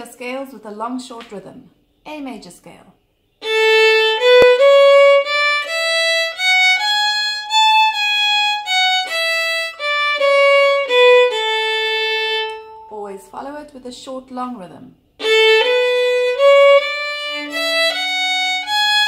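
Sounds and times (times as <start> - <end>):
violin playing a scale: 3.4 - 12.8, 15.2 - 19.0.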